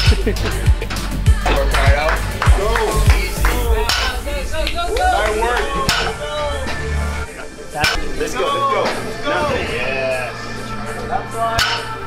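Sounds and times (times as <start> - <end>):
deep steady bass: 0.0 - 8.0.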